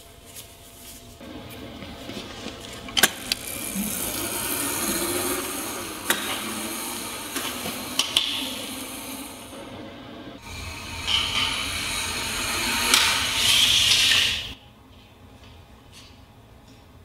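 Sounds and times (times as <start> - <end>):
electric motor whine: 2.5 - 14.6
rattling hiss: 3.0 - 9.6, 10.4 - 14.6.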